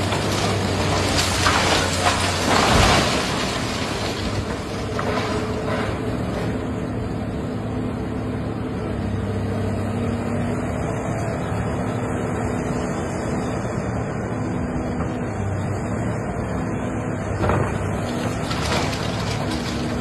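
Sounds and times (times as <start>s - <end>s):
excavator diesel engine droning: 0.0s - 20.0s.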